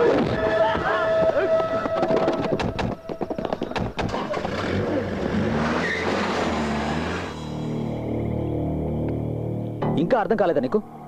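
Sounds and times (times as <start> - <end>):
tyre noise: 0.0 - 7.4.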